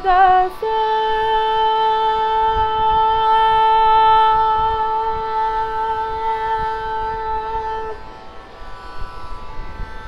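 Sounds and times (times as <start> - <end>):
woman singing long held note: 0.0 - 8.2.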